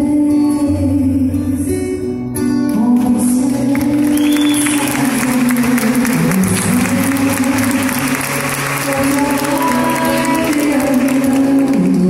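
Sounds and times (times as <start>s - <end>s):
crowd noise: 1.5s - 12.0s
audience applause: 3.4s - 12.0s.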